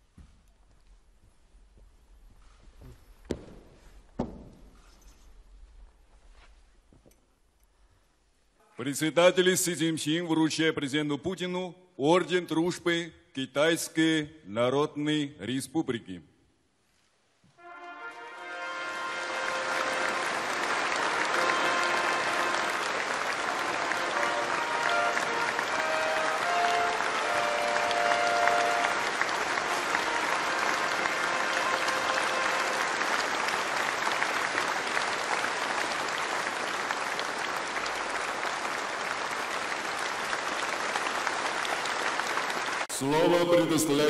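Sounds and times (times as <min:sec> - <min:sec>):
band music playing: 0:17.6 - 0:33.0
audience applauding: 0:17.6 - 0:44.0.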